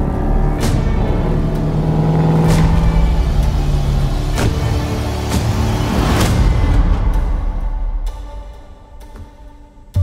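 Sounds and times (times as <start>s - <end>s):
car engine driving: 0.0s - 7.5s
dark trailer score: 0.0s - 10.0s.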